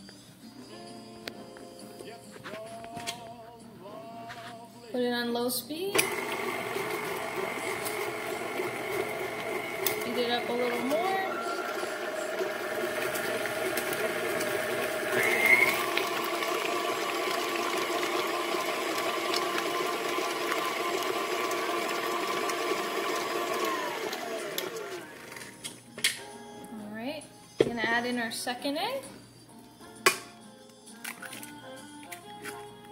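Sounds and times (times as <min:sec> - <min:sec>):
stand mixer motor whine: 0:06.0 - 0:25.5.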